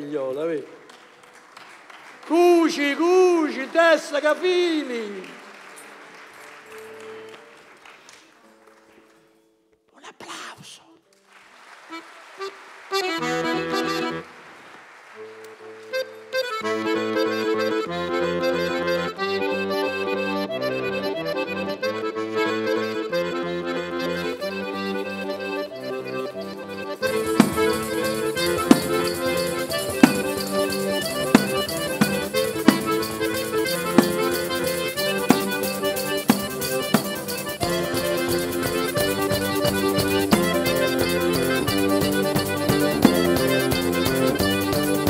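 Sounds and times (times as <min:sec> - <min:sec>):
button accordion playing chords: 0:11.9 - 0:14.4, 0:15.2 - 0:45.0
steady drum beat: 0:27.0 - 0:45.0.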